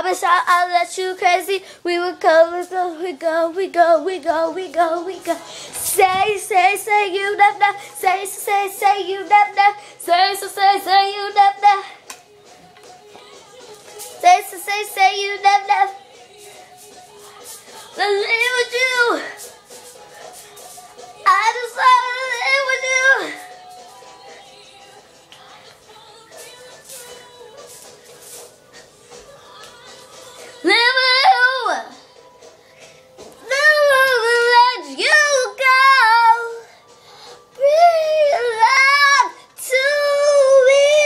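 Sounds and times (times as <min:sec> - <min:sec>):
girl singing without words: 0:00.0 - 0:12.2, 0:12.8 - 0:32.2, 0:33.4 - 0:36.8, 0:37.5 - 0:41.0
faint backing track: 0:00.0 - 0:41.0
girl singing long wavering notes: 0:21.2 - 0:23.6, 0:33.4 - 0:36.7, 0:37.6 - 0:41.0.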